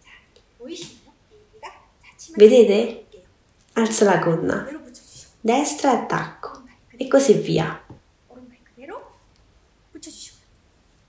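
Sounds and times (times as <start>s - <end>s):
woman's soft wordless voice: 0.1s - 9.2s, 9.9s - 10.4s.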